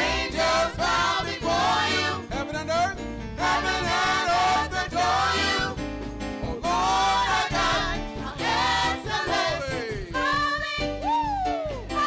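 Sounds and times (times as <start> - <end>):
gospel group singing: 0.0 - 2.3, 3.3 - 11.1
keyboard accompaniment: 0.0 - 12.0.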